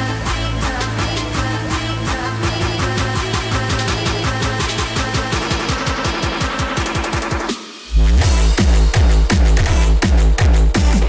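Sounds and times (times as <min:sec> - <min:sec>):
synths: 0:00.0 - 0:09.8
rapid kick drum roll: 0:01.0 - 0:11.0.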